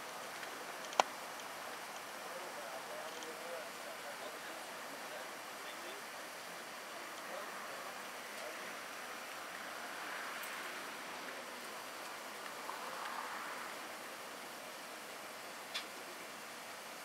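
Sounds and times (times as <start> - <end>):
steady background hiss: 0.0 - 17.0
sharp click: 15.7 - 16.0.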